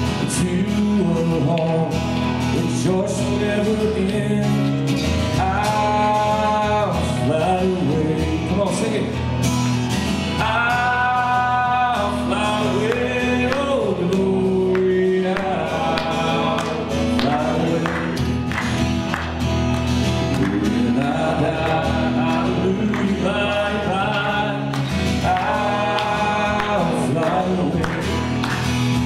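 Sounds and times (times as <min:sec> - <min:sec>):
man singing: 0:00.0 - 0:09.3, 0:10.3 - 0:18.5, 0:20.2 - 0:29.0
acoustic guitar strumming: 0:00.0 - 0:29.0.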